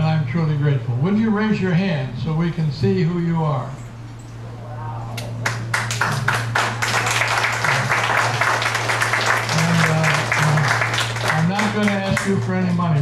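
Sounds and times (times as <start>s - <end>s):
low hum: 0.0s - 13.0s
audience applauding: 5.4s - 13.0s.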